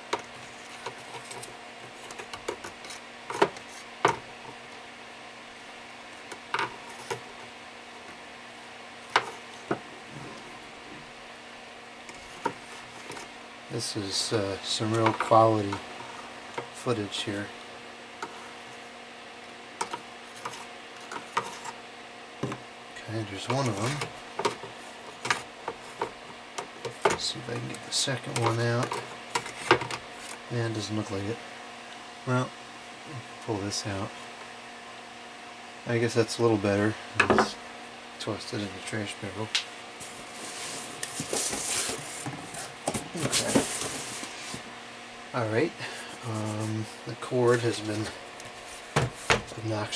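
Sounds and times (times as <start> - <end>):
faint steady hum: 0.0 - 49.9
rustling and scraping: 0.2 - 4.2, 12.0 - 13.4, 19.8 - 21.8, 23.2 - 30.5, 39.9 - 44.8, 46.1 - 49.6.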